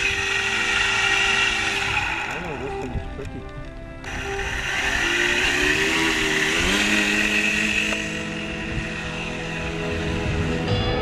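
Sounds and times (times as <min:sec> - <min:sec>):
model airplane engine drone: 0:00.0 - 0:11.0.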